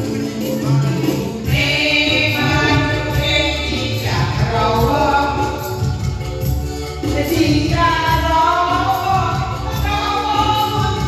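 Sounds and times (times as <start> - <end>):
electronic keyboard backing: 0.0 - 11.0
women singing into microphones: 0.0 - 11.0.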